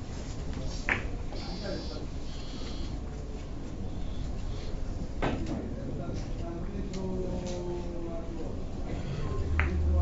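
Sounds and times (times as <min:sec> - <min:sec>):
steady low room hum: 0:00.0 - 0:10.0.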